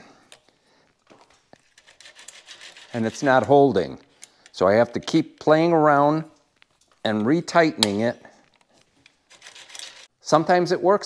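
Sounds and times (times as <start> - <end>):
chainsaw chain clicking in vise: 1.3 - 5.6, 7.8 - 10.1.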